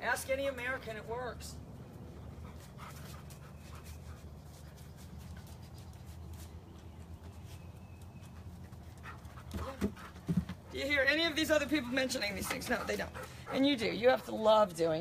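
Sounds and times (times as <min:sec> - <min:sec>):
dog panting: 0:01.8 - 0:06.4, 0:11.2 - 0:14.3.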